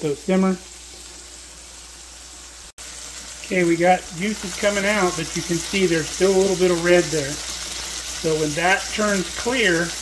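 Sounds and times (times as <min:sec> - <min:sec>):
patties sizzling in hot oil: 0:00.0 - 0:10.0.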